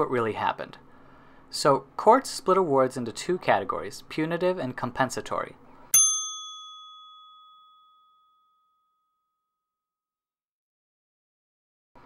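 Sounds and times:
high bell-like ding: 5.9s - 9.5s.

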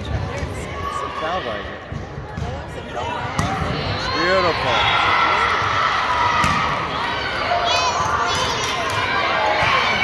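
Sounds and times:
spectators' voices echoing: 0.0s - 10.0s
volleyball being struck: 6.4s - 6.8s.

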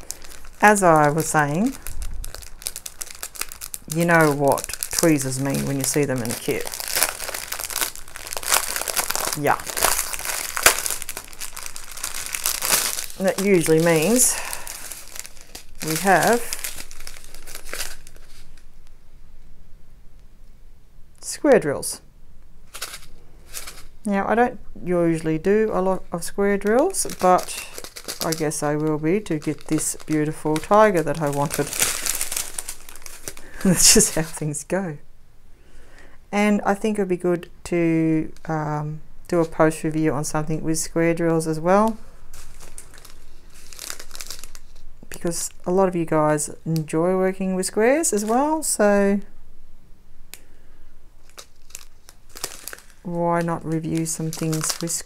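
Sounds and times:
plastic bag crinkling: 0.0s - 18.9s, 22.6s - 24.1s, 25.1s - 34.5s, 39.3s - 47.0s, 47.6s - 49.2s, 51.2s - 55.0s.

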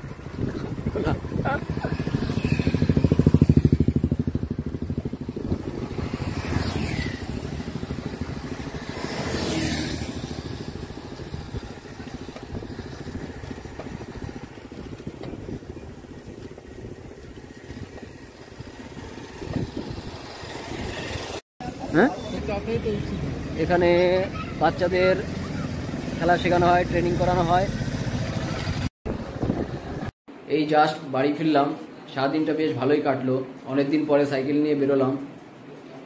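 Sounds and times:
motorcycles passing: 0.0s - 30.1s
steady traffic noise: 0.0s - 36.0s.

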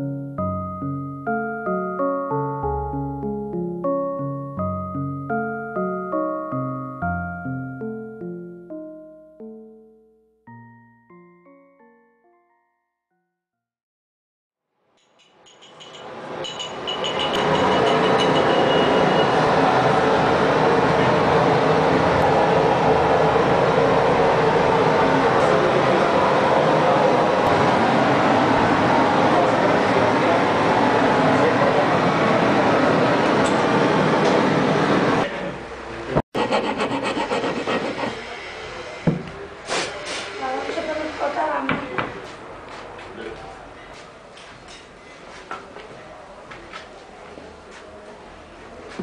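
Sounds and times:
hand tool knocking on bronze: 15.0s - 18.9s
machinery roaring: 16.3s - 39.6s.

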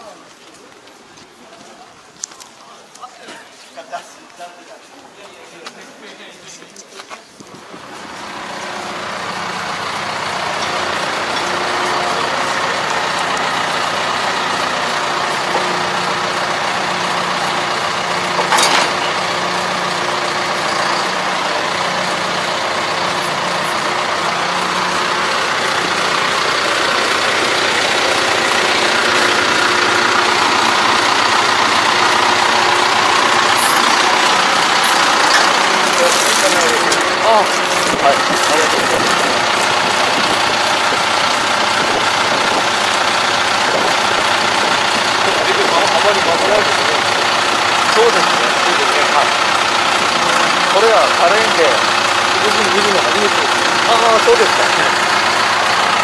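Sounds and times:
tractor diesel engine idling: 7.4s - 56.0s.

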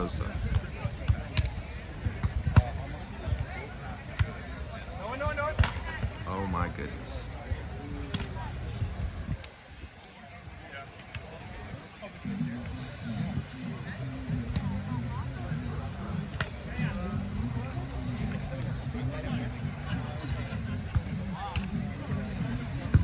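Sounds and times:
faint distant voices: 0.0s - 23.0s
wind rumble on microphone: 8.4s - 10.0s
background music: 12.2s - 23.0s.

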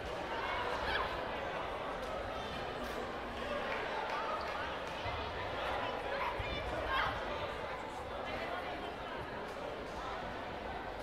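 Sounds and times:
spectators chattering in hall: 0.0s - 11.0s.

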